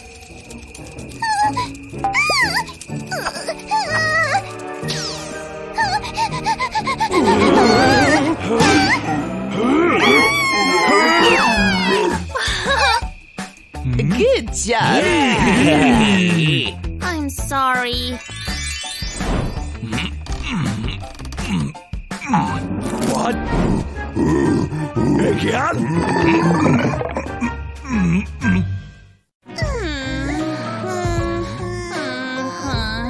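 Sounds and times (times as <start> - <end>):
background music: 0.0 - 33.0
cartoon character wailing: 7.1 - 9.1, 9.7 - 13.0.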